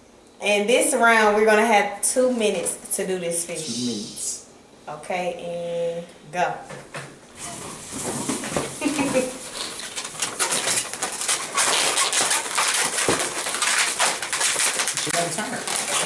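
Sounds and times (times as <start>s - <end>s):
balloons squeaking and rubbing: 7.4s - 16.0s.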